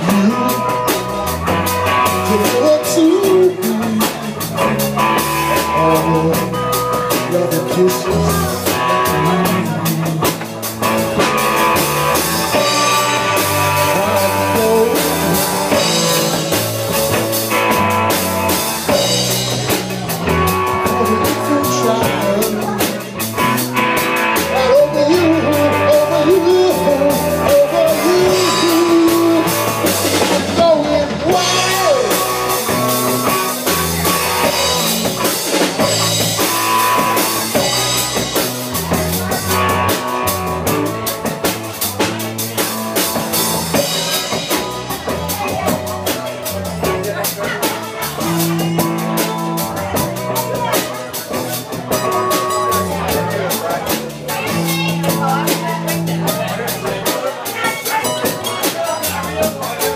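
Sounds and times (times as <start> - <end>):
electric guitar lead with bending notes: 0.0 - 59.9
live rock band playing: 0.0 - 59.9.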